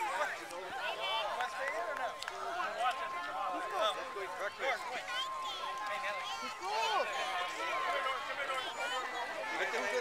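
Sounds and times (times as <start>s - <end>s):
children and adults chattering: 0.0s - 10.0s.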